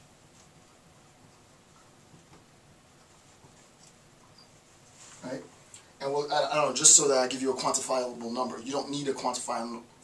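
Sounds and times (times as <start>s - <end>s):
marker squeaking on whiteboard: 3.3s - 4.7s.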